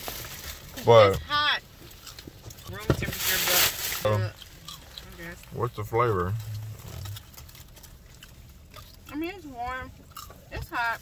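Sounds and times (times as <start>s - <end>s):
low background hum: 0.0s - 11.0s
person chewing wetly: 1.8s - 2.7s, 4.1s - 10.5s.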